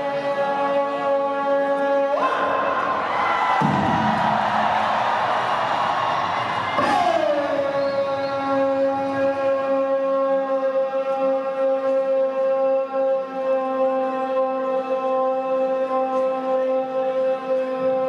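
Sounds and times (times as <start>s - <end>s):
bugle over loudspeakers: 0.0s - 18.0s
crowd cheering: 0.9s - 9.4s.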